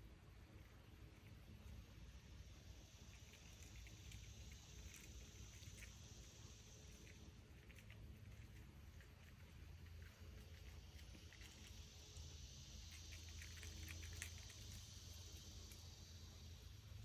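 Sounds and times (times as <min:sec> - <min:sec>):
faint ticks and crackles: 0:00.0 - 0:17.0
soft high hiss: 0:00.0 - 0:17.0.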